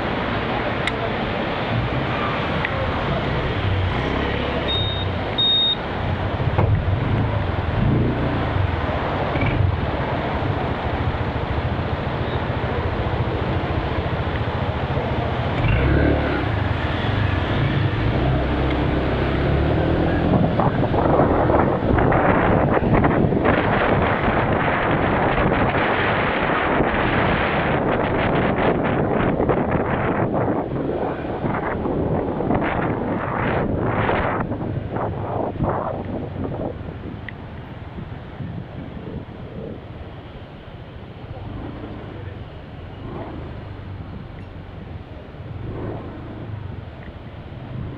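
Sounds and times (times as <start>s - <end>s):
road and traffic noise: 0.0s - 47.9s
wind buffeting microphone: 16.4s - 47.9s
motorbike engine drone: 39.5s - 47.9s.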